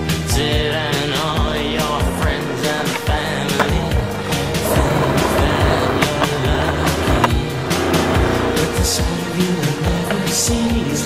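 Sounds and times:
background music with drum beat: 0.0s - 11.0s
skateboard wheels rolling on concrete: 0.0s - 11.0s
skateboard clacking: 1.2s - 11.0s.

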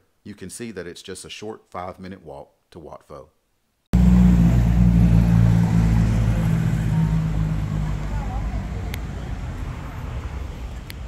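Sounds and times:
vehicle engine running: 4.0s - 9.7s.

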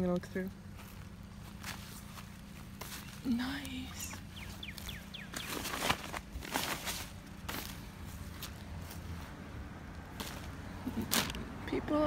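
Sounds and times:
footsteps on dry grass: 0.6s - 11.4s
bird falling chirps: 4.2s - 6.2s
shoes rustling in cardboard box: 4.5s - 9.0s.

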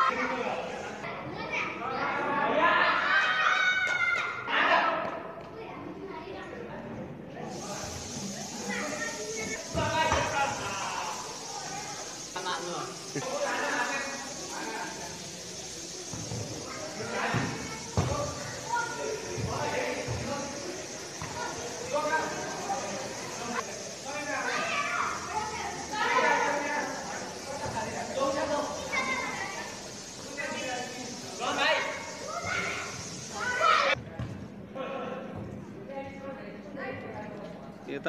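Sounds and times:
players shouting in echoing hall: 1.6s - 5.3s, 30.8s - 34.0s
ball being kicked thud: 17.3s - 18.3s, 34.0s - 34.4s.

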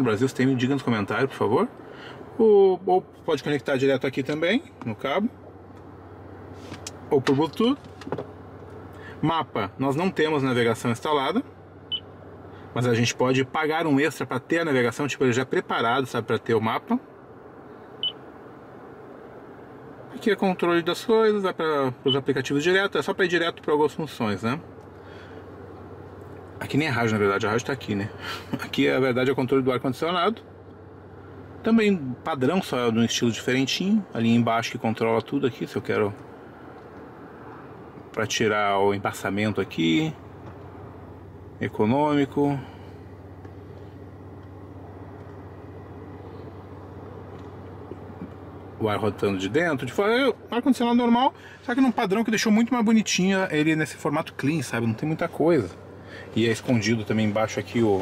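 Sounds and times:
car cabin hum: 0.0s - 58.0s
climate control fan running: 0.0s - 58.0s.

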